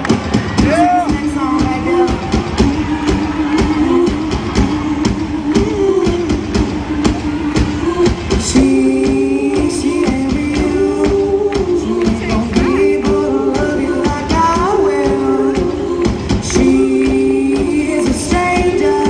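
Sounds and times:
live band playing: 0.0s - 19.0s
woman singing into microphone: 0.6s - 19.0s.

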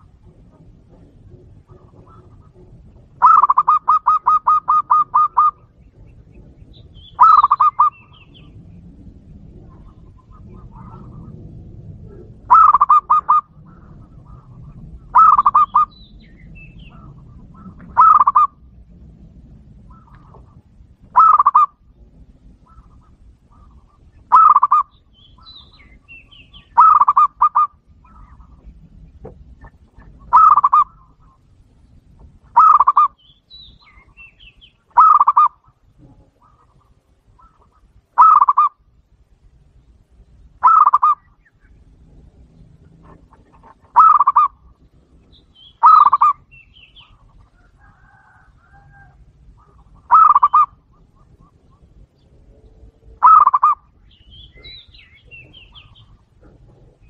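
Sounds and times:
dove cooing: 0.0s - 31.5s, 32.2s - 33.2s, 33.8s - 38.8s, 40.6s - 57.0s.

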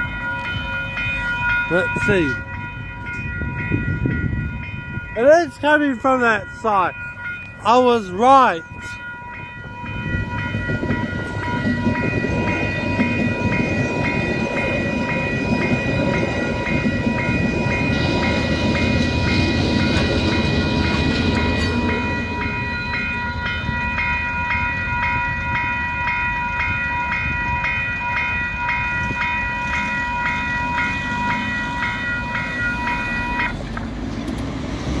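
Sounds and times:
level crossing alarm bells ringing: 0.0s - 33.6s
train wheels rumbling on rails: 0.0s - 35.0s.

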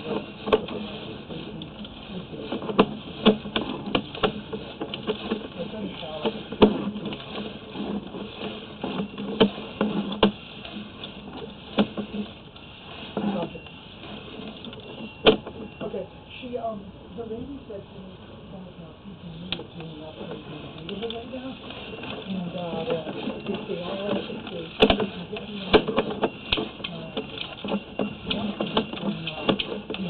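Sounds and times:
faint indistinct voices: 13.0s - 30.0s.

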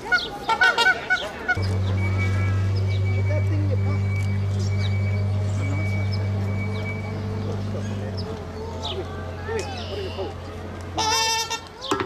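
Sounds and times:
goose honking: 0.1s - 11.8s
steady low hum: 1.6s - 11.6s.

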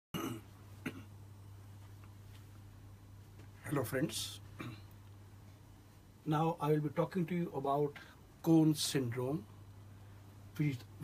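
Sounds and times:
man coughing: 0.2s - 1.1s
steady low hum: 0.2s - 11.0s.

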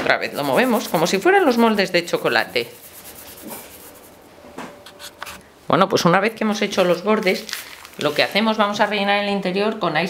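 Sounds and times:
faint rubbing on cloth: 0.2s - 4.3s, 4.9s - 5.4s.

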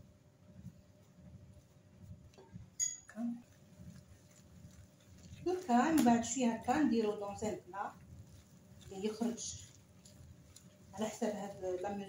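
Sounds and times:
whisk stirring batter in glass bowl: 0.6s - 12.0s.

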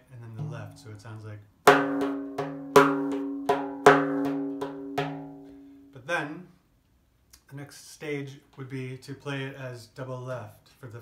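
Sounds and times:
frame drum played by hand: 0.3s - 0.8s, 1.7s - 5.6s.

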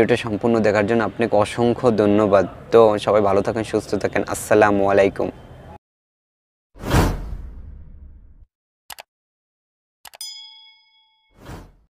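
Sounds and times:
short whoosh: 6.8s - 8.5s
bell ding: 10.2s - 11.4s.

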